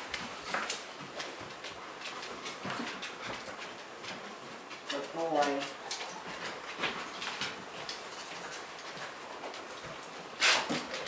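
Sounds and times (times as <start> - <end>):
dog sniffing: 10.4 - 10.9.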